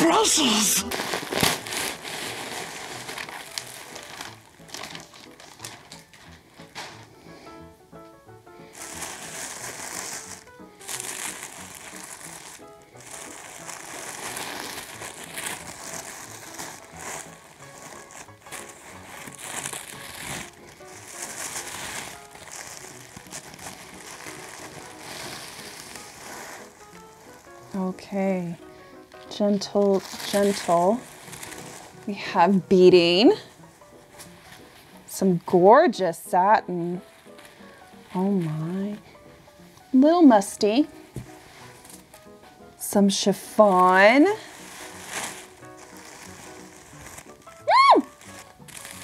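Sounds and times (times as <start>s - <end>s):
faint background music: 0.0s - 49.0s
paper wrapping rustling: 0.0s - 49.0s.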